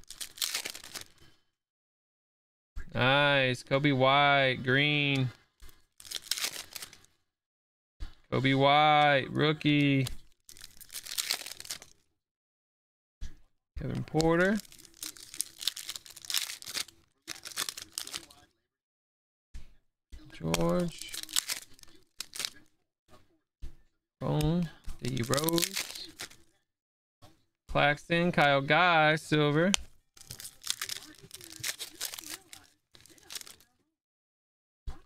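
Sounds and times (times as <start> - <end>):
cards rustling: 0.0 - 1.2, 6.0 - 7.1, 8.9 - 12.0, 13.9 - 18.4, 20.4 - 22.6, 25.0 - 26.4, 29.8 - 33.7
foil wrapper crinkling and tearing: 0.0 - 1.2, 5.8 - 7.1, 9.6 - 12.0, 14.2 - 18.4, 20.4 - 22.7, 25.0 - 26.5, 30.2 - 33.7.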